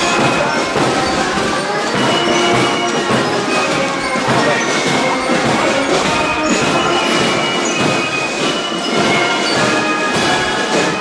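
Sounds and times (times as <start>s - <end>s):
brass marching band playing: 0.0s - 11.0s
outdoor street noise: 0.0s - 11.0s.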